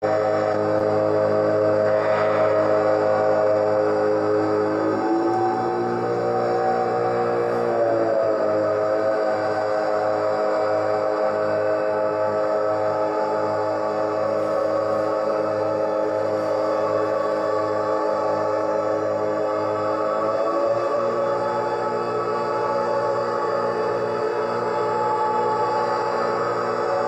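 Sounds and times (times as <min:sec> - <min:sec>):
electronic drone music: 0:00.0 - 0:27.0.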